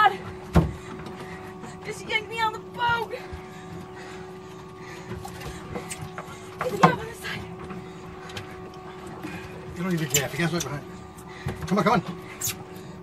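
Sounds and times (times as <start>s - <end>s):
boat mechanical hum: 0.0s - 13.0s.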